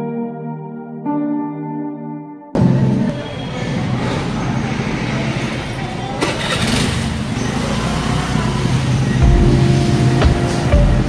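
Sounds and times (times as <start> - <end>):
car and motorbike engines running: 3.1 - 11.0.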